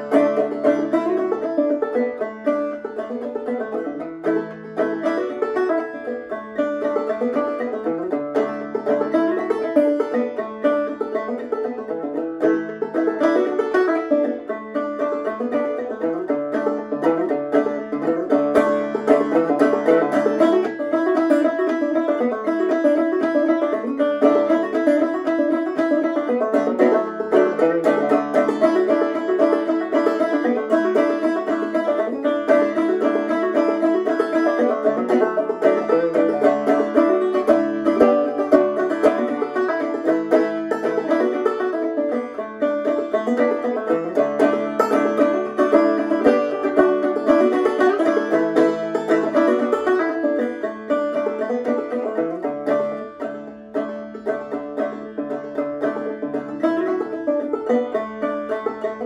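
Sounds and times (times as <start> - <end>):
banjo plucked notes: 0.0 - 59.0.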